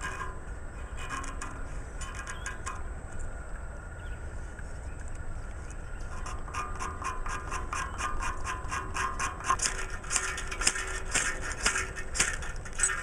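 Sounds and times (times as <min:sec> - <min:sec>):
steel scraping ferrocerium rod: 0:00.0 - 0:02.8, 0:06.1 - 0:13.0.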